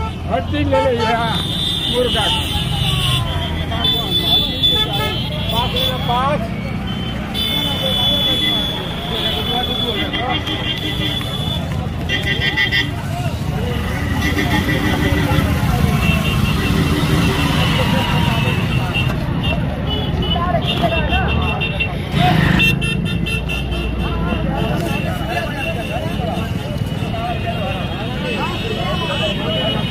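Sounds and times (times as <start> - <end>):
vehicle horns pulsing: 0.0 - 13.2, 13.8 - 26.4
crowd voices: 0.0 - 29.9
vehicle engines running: 0.0 - 29.9.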